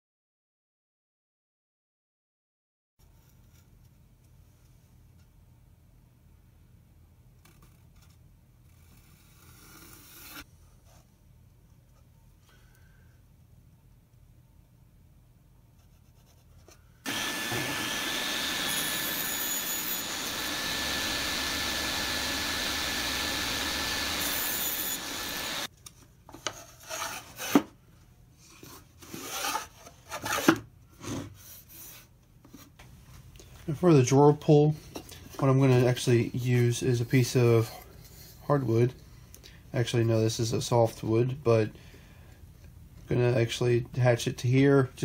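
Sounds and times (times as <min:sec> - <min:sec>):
table saw running: 0:17.1 - 0:25.7.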